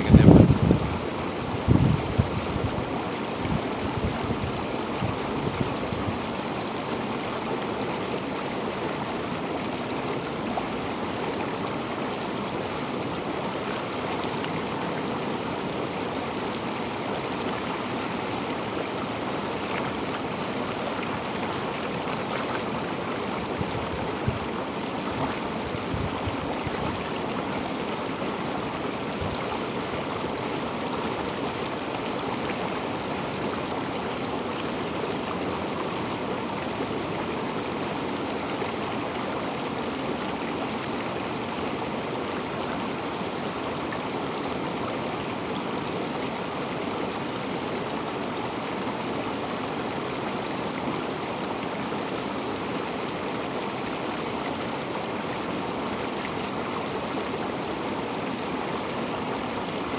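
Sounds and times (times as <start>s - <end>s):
bubbling churning water: 0.1s - 59.9s.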